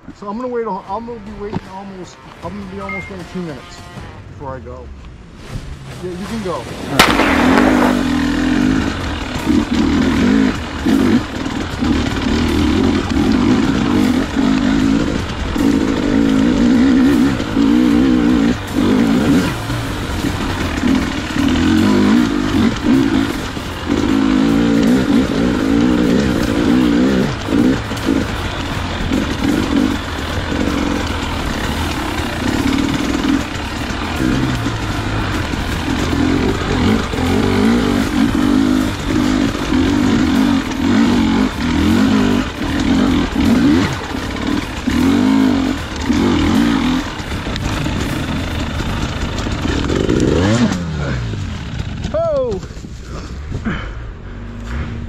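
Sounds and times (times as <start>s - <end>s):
dirt bike engine revving: 5.8s - 55.0s.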